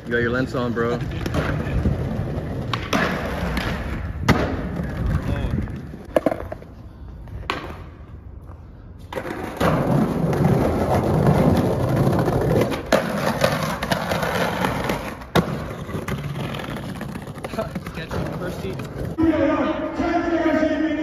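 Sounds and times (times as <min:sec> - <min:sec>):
skateboard wheels rolling on bricks: 0:00.0 - 0:06.8, 0:09.1 - 0:19.2
skateboard grinding on stone ledge: 0:09.2 - 0:19.2.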